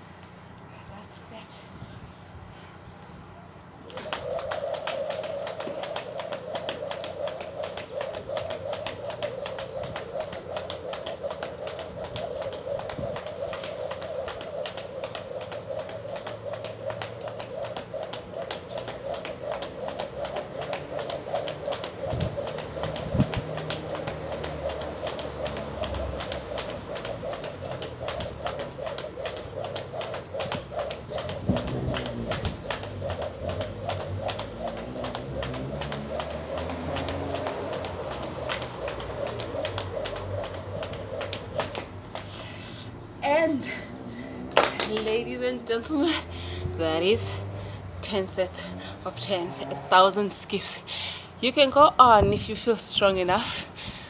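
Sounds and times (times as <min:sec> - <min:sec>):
skipping rope slapping the ground: 0:03.8 - 0:42.4, 0:44.5 - 0:45.4.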